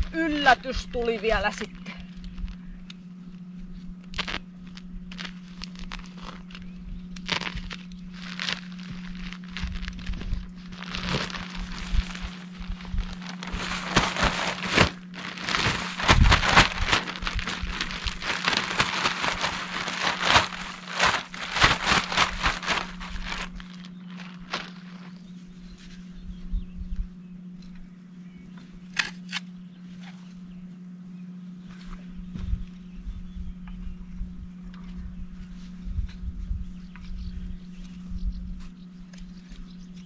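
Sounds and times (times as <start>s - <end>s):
sharp cracks and crunches: 4.0s - 25.2s
plastic sack crinkling: 4.2s - 4.4s, 5.1s - 6.6s, 7.2s - 25.3s.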